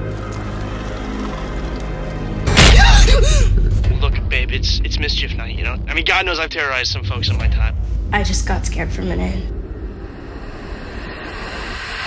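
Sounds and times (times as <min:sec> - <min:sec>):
suspense drone: 0:00.0 - 0:12.0.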